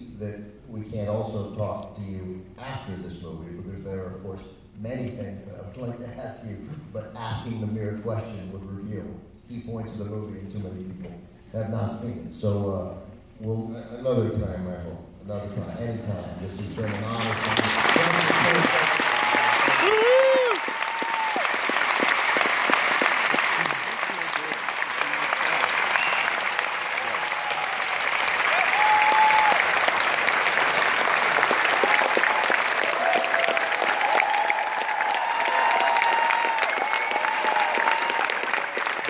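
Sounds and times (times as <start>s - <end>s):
audience applauding: 16.6s - 39.0s.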